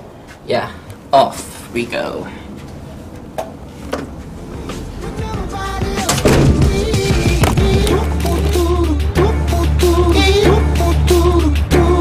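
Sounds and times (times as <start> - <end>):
background song: 4.7 - 12.0.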